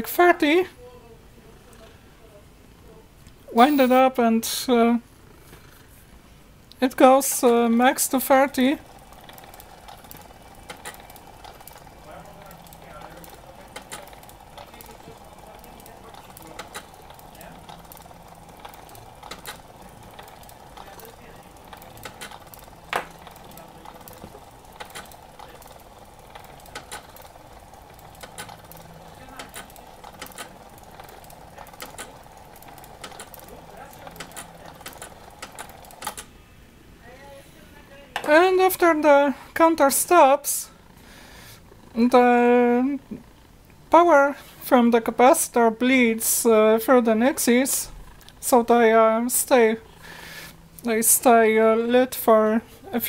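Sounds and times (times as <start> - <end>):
irregular mechanical clicks: 6.6 - 36.5, 38.2 - 52.3
timer motor whirring: 6.6 - 53.0.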